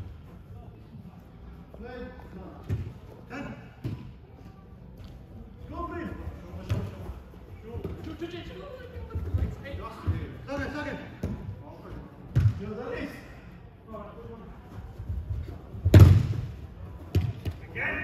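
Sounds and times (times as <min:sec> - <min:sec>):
football kick thuds: 0:12.3 - 0:12.6, 0:15.8 - 0:17.6.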